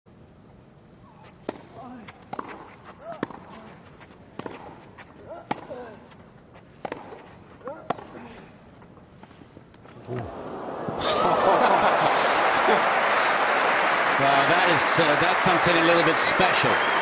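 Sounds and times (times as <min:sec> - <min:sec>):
racket striking tennis ball: 0:01.2 - 0:05.9, 0:06.6 - 0:08.2.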